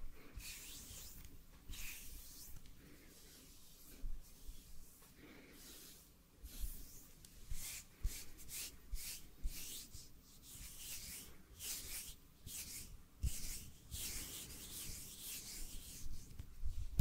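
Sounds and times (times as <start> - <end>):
palms rubbing together: 0.3 - 16.4.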